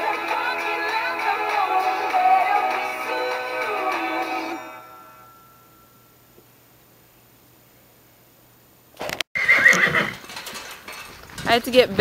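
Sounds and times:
background music: 0.0s - 6.0s
horse whinnying: 9.4s - 10.3s.

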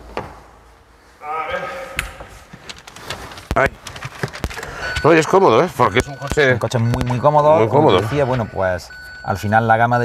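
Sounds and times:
person exclaiming: 1.2s - 2.2s.

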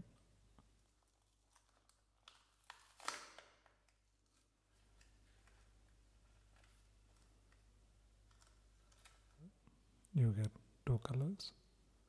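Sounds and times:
plastic crinkle: 0.8s - 9.5s.

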